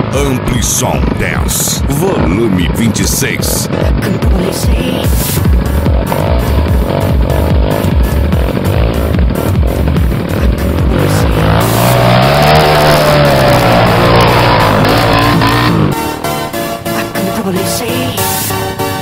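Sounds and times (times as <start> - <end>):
dirt bike engine revving: 0.0 - 17.9
electronic dance music: 0.0 - 19.0.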